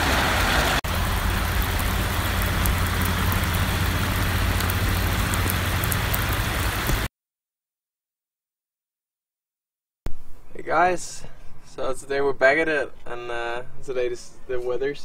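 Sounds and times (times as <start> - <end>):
heavy rain on asphalt: 0.0 - 7.1
low rumble: 0.9 - 7.1.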